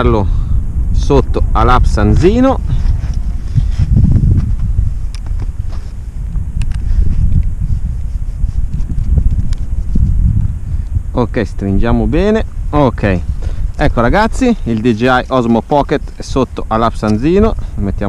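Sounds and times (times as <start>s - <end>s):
wind buffeting microphone: 0.0s - 18.0s.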